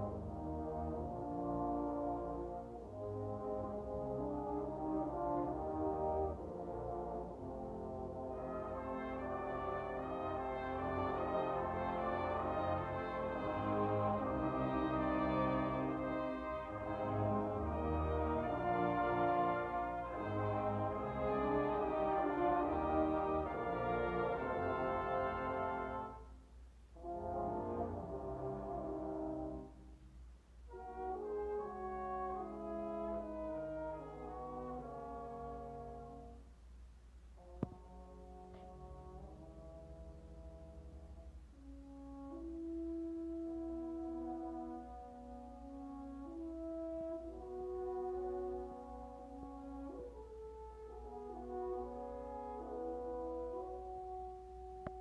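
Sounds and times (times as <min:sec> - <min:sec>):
brass ensemble playing chords: 0:00.0 - 0:36.5, 0:37.4 - 0:55.0.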